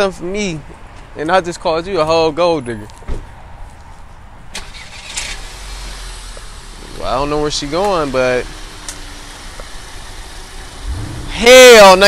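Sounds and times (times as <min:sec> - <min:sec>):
car engine starting and idling: 0:04.5 - 0:12.0.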